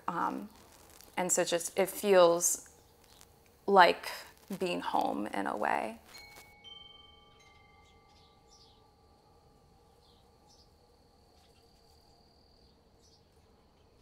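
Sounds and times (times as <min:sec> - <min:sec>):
metal chimes ringing: 0:06.1 - 0:10.8.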